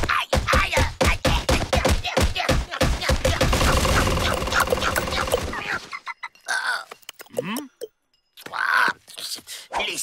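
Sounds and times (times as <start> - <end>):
rapid cartoon footfalls: 0.0 - 5.7.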